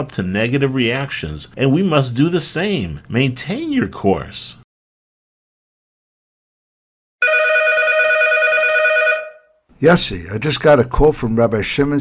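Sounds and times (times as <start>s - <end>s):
telephone ringing: 7.2s - 9.6s.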